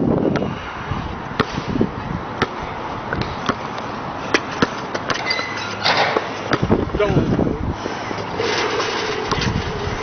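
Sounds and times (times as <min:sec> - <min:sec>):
basketball bouncing: 0:02.4 - 0:03.7, 0:04.3 - 0:06.8.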